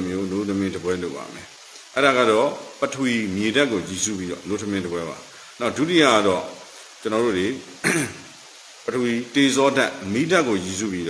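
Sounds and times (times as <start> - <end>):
man speaking: 0.0 - 8.0, 8.9 - 11.0
man clearing throat: 7.8 - 8.3.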